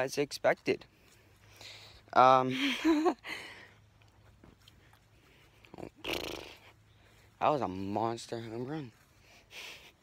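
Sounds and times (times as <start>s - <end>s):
person breathing: 0.9s - 3.9s, 6.5s - 7.4s, 9.0s - 10.0s.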